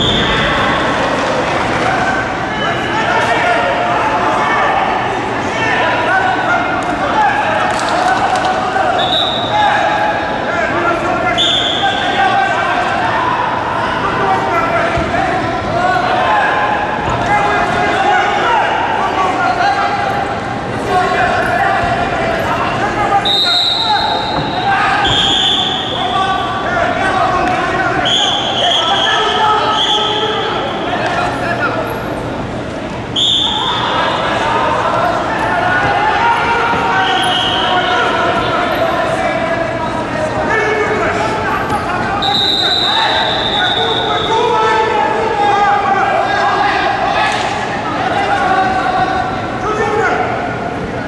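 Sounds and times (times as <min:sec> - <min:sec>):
people shouting and talking: 0:00.0 - 0:51.0
whistle blown long: 0:09.0 - 0:09.6, 0:11.4 - 0:12.0, 0:23.2 - 0:24.4, 0:25.0 - 0:26.0, 0:33.2 - 0:33.9, 0:42.2 - 0:44.3
short high whistle blasts: 0:33.2 - 0:33.8.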